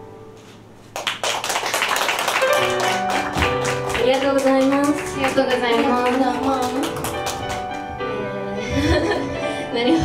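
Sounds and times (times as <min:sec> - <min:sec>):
music: 0:00.0 - 0:00.9, 0:02.0 - 0:10.0
audience applause: 0:01.0 - 0:07.9.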